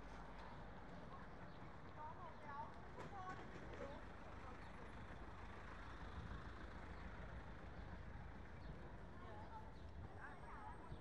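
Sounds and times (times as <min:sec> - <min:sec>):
low rumble of traffic: 0:00.0 - 0:11.0.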